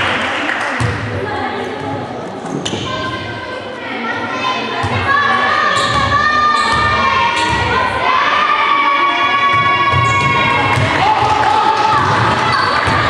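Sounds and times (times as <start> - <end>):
crowd cheering and shouting: 5.0 - 13.0.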